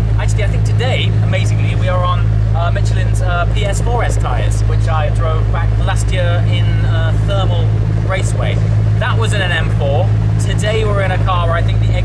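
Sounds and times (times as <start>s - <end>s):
car engine idling: 0.0s - 12.0s
man talking: 0.0s - 12.0s.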